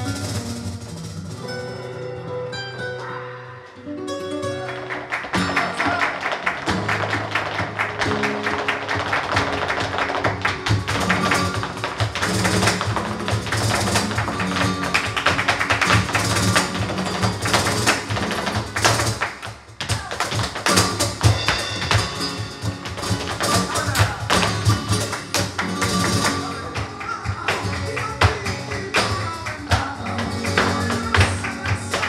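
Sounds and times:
drums: 0:00.0 - 0:01.9, 0:19.6 - 0:31.9
flamenco guitar: 0:00.0 - 0:32.0
hand-clapping: 0:04.4 - 0:32.0.

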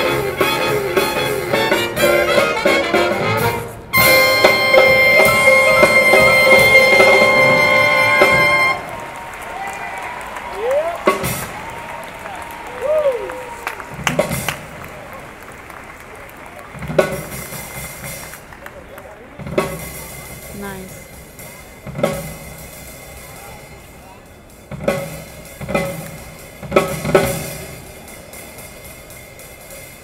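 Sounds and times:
drum kit: 0:00.0 - 0:15.3, 0:16.6 - 0:30.0
live band playing: 0:00.0 - 0:30.0
crowd applauding: 0:05.3 - 0:20.2.

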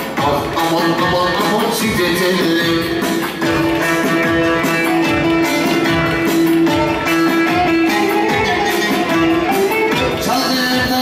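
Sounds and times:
steady drum beat: 0:00.0 - 0:11.0
plucked string instrument melody: 0:02.8 - 0:11.0.

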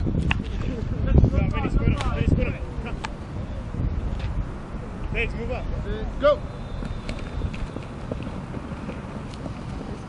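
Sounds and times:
wind rumble on microphone: 0:00.0 - 0:10.0
distant shouted calls: 0:04.8 - 0:10.0.

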